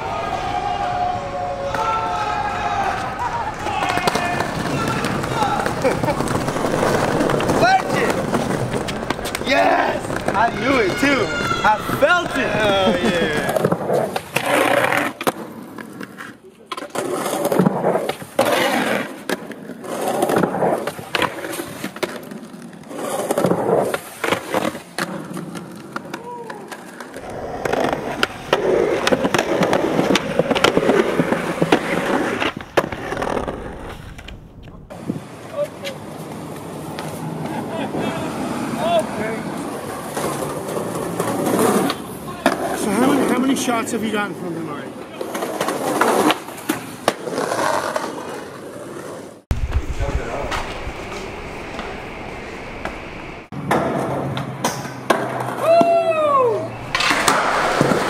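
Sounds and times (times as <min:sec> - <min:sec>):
skateboard wheels rolling on concrete: 0:00.0 - 0:58.0
skateboard clacks: 0:02.8 - 0:38.0, 0:38.9 - 0:43.6, 0:53.6 - 0:58.0.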